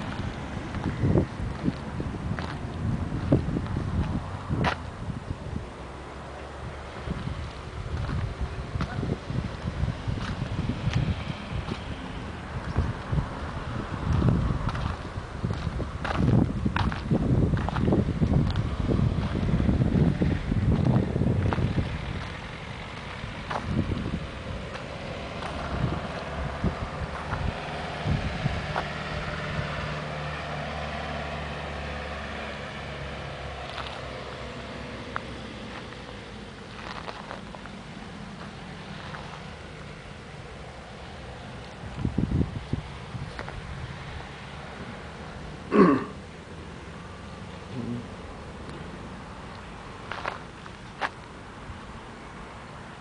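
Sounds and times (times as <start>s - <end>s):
wind buffeting microphone: 0.0s - 6.0s, 6.6s - 34.2s, 39.9s - 45.0s
distant vehicle passing: 0.0s - 53.0s.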